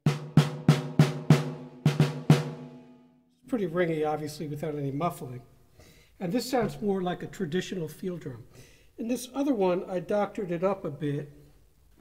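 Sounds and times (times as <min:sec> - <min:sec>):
ringing snare drum hits: 0:00.0 - 0:03.0.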